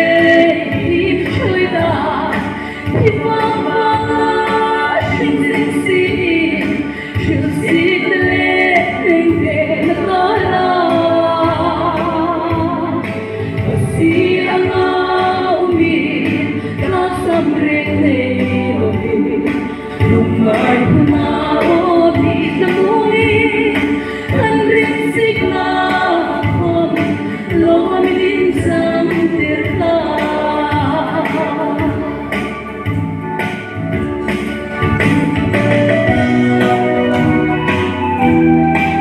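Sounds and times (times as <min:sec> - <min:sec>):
woman singing into microphone: 0:00.0 - 0:35.0.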